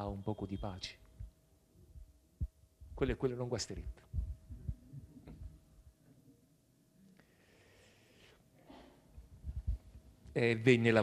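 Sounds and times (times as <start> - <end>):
faint steady hum: 0.0 - 11.0
soft low thumps: 2.0 - 3.0, 3.9 - 5.6, 9.2 - 9.9.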